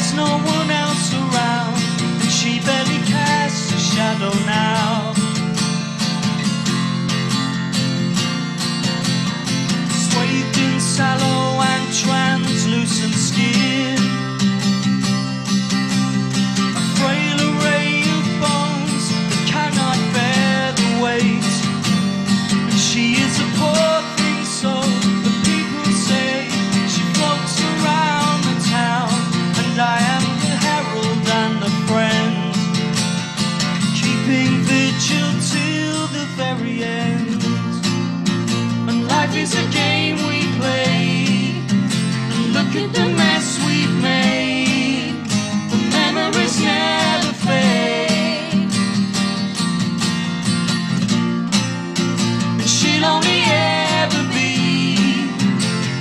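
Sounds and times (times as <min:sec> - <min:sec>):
person singing: 0:00.0 - 0:05.2, 0:09.8 - 0:14.3, 0:16.8 - 0:21.7, 0:22.7 - 0:32.8, 0:38.9 - 0:48.8, 0:52.6 - 0:56.0
strummed acoustic guitar: 0:00.0 - 0:56.0.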